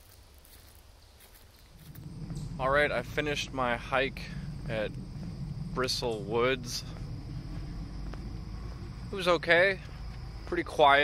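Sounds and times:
wind buffeting microphone: 0:01.6 - 0:11.0.

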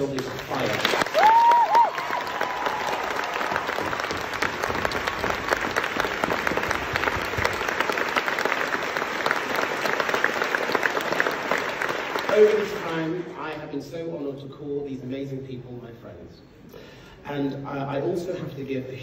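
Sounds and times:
audience applauding: 0:00.0 - 0:13.3
high-pitched whoop: 0:01.1 - 0:03.4.

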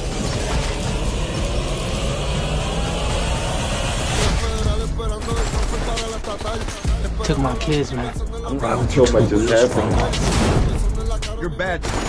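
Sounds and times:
rising tone: 0:00.0 - 0:04.8.

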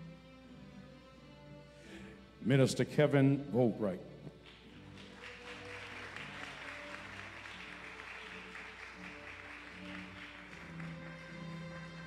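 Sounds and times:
soft background music: 0:00.0 - 0:12.0
people clapping: 0:04.3 - 0:12.0.

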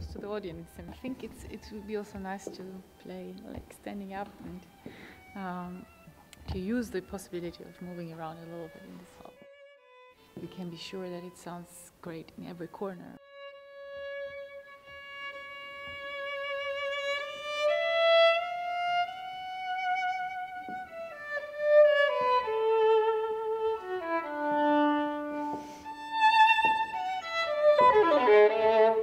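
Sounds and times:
solo violin melody: 0:00.0 - 0:29.0.

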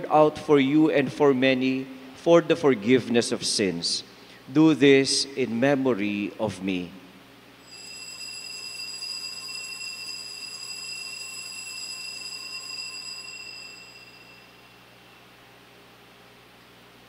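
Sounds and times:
altar bells ringing: 0:07.6 - 0:15.4.

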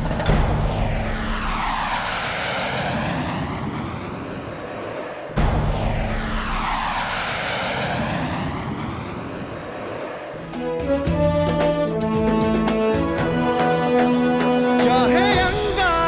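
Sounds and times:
jet aircraft flyby roar: 0:00.0 - 0:16.0.

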